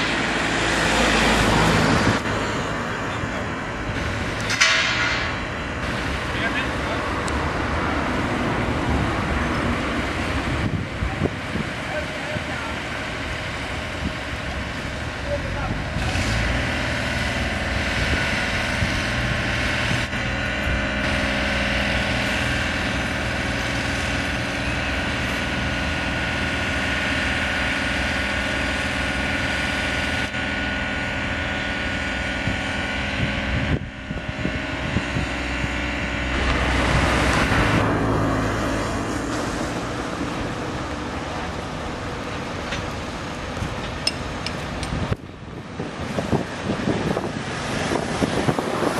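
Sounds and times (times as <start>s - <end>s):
heavy machinery engine noise: 0.0s - 48.9s.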